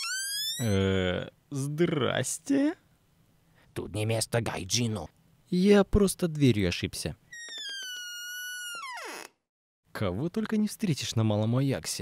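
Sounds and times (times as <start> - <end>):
door hinge creaking: 0.0 - 0.6, 7.3 - 9.4.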